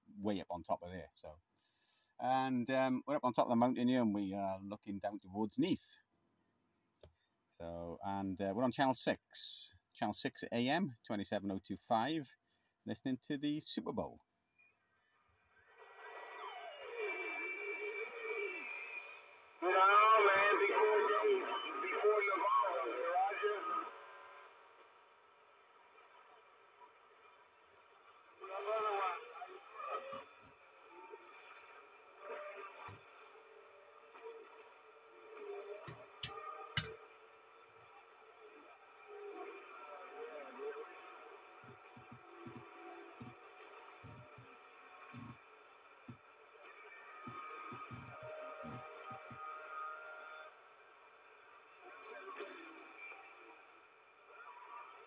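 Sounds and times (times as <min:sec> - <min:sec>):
voices over radio speaker: 0:19.6 - 0:23.9, 0:47.7 - 0:49.9
radio hiss: 0:45.1 - 0:45.4, 0:47.1 - 0:50.3.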